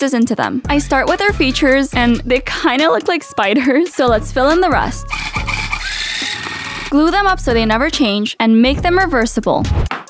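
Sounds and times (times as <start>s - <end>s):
electric tufting gun running: 5.1s - 7.0s.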